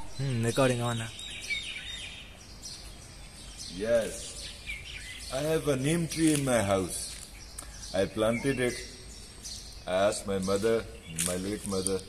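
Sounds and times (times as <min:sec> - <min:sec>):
birds chirping: 0:00.0 - 0:12.0
outdoor background noise: 0:00.0 - 0:12.0.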